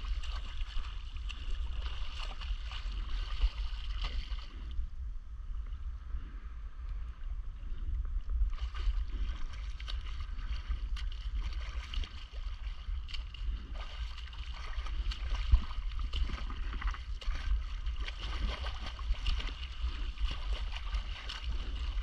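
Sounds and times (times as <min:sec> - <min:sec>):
water splashing and sloshing: 0:00.0 - 0:04.8, 0:06.8 - 0:22.0
wind rumble on microphone: 0:00.0 - 0:22.0.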